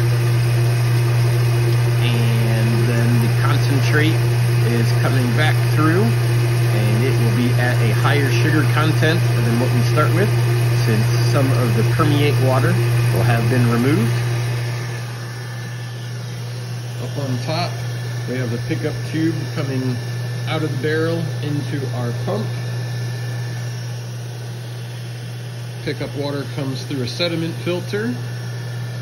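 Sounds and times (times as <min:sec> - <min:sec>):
pump humming: 0:00.0 - 0:29.0.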